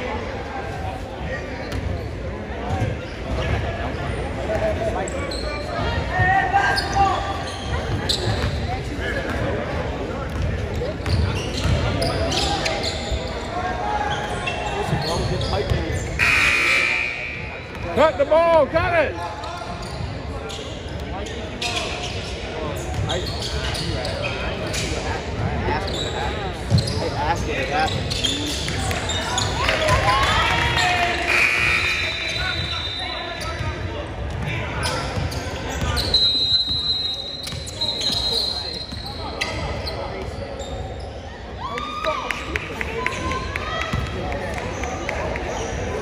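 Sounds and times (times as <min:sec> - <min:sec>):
sneakers squeaking: 0:01.2 - 0:42.1, 0:43.1 - 0:46.0.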